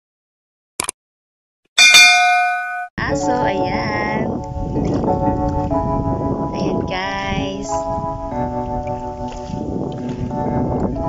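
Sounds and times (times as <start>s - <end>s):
notification bell ding: 1.8s - 2.9s
music: 3.0s - 11.0s.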